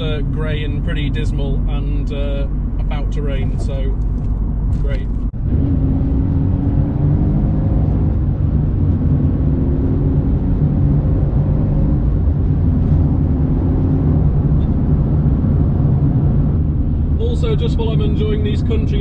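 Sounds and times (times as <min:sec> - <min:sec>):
car engine and exhaust drone: 0:00.0 - 0:19.0
road rumble: 0:00.0 - 0:19.0.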